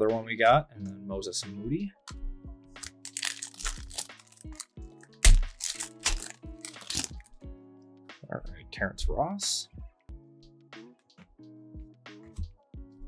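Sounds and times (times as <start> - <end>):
quiet background music: 0.0 - 13.0
trading cards crackling and clicking: 2.8 - 7.3.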